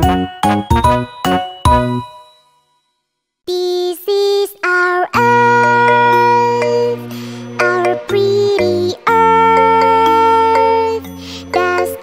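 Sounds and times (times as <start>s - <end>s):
cartoon children's song music: 0.0s - 2.6s, 3.4s - 12.0s.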